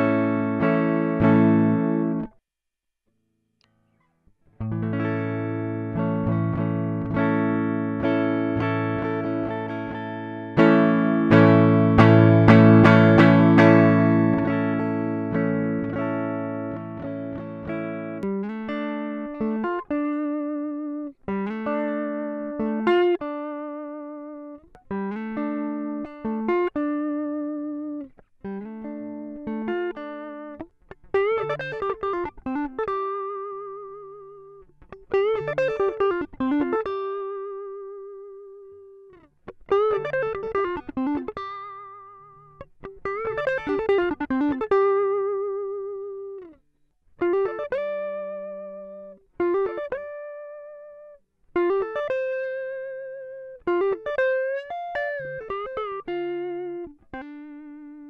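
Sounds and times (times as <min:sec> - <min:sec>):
clean electric guitar: 0:00.0 - 0:02.4, 0:03.6 - 0:58.0.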